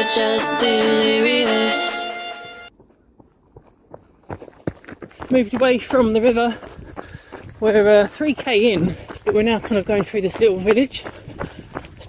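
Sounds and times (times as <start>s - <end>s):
background music: 0.0s - 2.7s
footfalls on dirt path: 2.8s - 12.0s.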